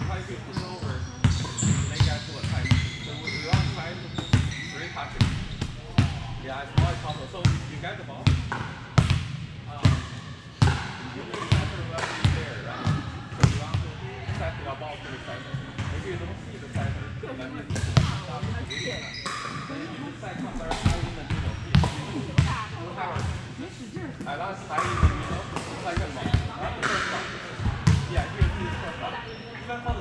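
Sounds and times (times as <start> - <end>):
players' voices: 0.0 - 8.7, 9.6 - 30.0
volleyballs hitting and bouncing: 5.2 - 14.5, 17.7 - 18.6, 20.6 - 23.5, 24.2 - 28.9.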